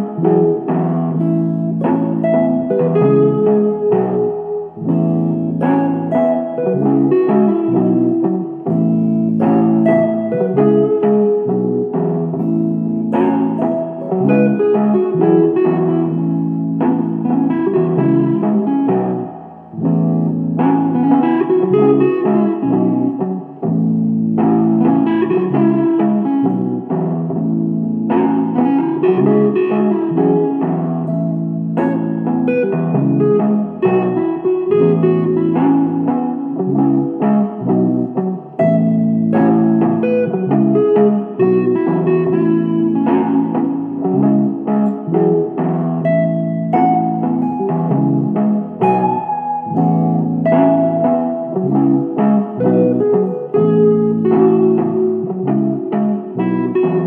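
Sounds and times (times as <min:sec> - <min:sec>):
looped electric guitar groove: 0:00.0 - 0:57.0.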